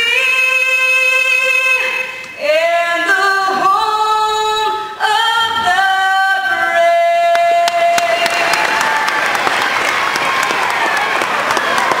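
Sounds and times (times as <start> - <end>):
crowd applauding and cheering: 7.7 - 12.0.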